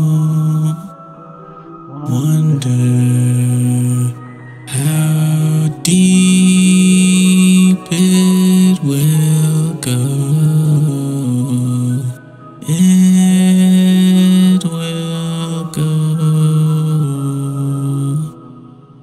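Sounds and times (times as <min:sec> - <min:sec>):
indie song with held low notes: 0:00.0 - 0:19.0.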